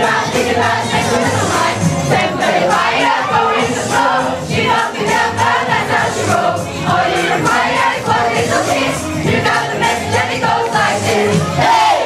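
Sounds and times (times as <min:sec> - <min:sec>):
amplified music: 0:00.0 - 0:12.0
male group singing pop song: 0:00.0 - 0:12.0.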